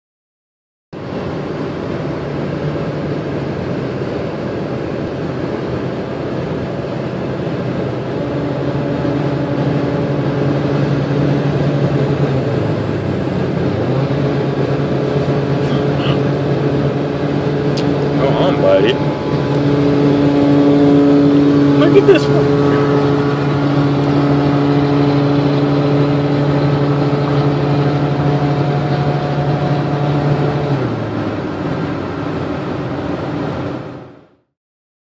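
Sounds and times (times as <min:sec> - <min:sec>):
low hum: 0:01.0 - 0:34.4
road and engine noise in car: 0:01.0 - 0:34.5.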